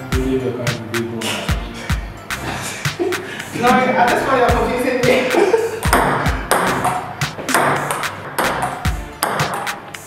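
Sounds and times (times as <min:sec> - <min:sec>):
table tennis ball hits: 0:05.8 - 0:10.0.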